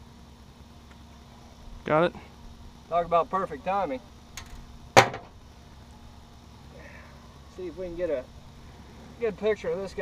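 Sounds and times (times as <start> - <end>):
sharp knock: 5.0 - 5.3.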